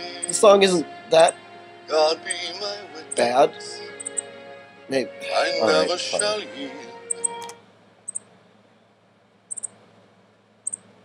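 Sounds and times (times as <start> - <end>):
small bird chirping: 4.0 - 4.3, 9.5 - 9.8, 10.6 - 10.9.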